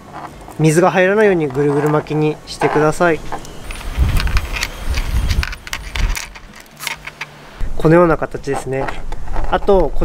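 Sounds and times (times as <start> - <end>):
electrical tape crackling: 0.0 - 7.4.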